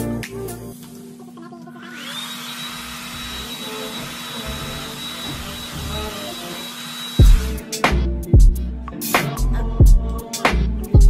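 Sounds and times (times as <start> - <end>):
hair dryer running: 1.8 - 7.6.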